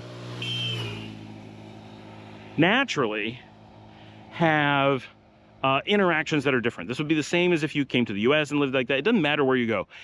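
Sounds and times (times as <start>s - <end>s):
brief high engine whine: 0.0s - 1.4s
vehicle passing close by: 0.0s - 5.6s.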